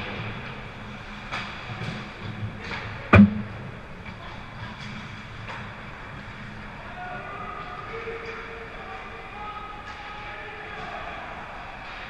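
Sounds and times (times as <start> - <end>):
skates and sticks scraping ice: 0.0 - 3.1
low rumble: 3.0 - 4.1.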